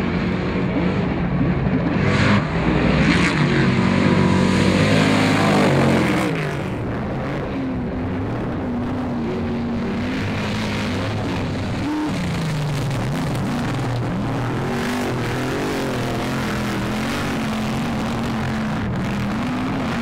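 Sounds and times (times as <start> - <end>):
race truck engine revving: 0.0 - 20.0.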